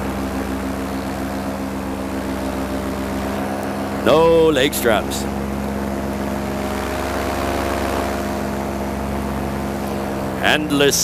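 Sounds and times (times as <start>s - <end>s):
paramotor engine and propeller: 0.0s - 11.0s.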